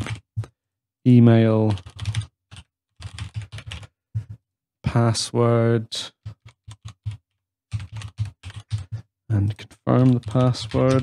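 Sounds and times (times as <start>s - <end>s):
keyboard typing: 0.0s - 0.5s, 1.7s - 4.4s, 6.2s - 11.0s.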